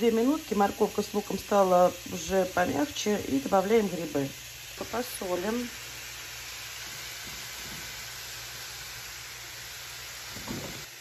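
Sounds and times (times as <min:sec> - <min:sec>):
vegetables sizzling in a frying pan: 0:00.0 - 0:11.0.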